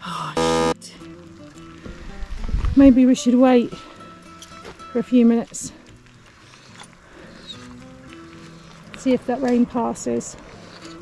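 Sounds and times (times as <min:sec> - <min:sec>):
quiet background music: 0:00.1 - 0:11.0.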